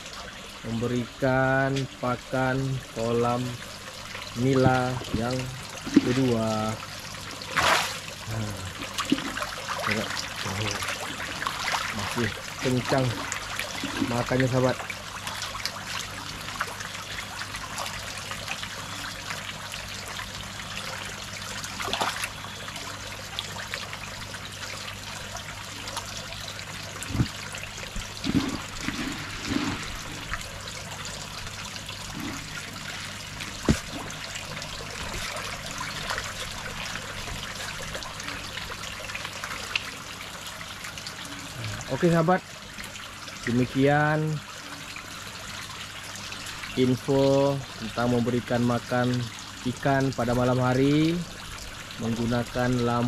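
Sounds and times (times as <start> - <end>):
water trickling into pond: 0.0 - 53.0
short splashes or knocks: 4.6 - 6.3, 7.5 - 8.0, 27.0 - 30.5, 33.3 - 36.2.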